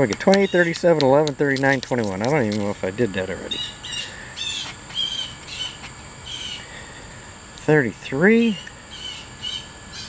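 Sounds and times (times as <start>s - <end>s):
birds chirping: 0.0s - 0.9s, 3.4s - 7.1s, 8.5s - 10.0s
high-pitched insect drone: 0.0s - 10.0s.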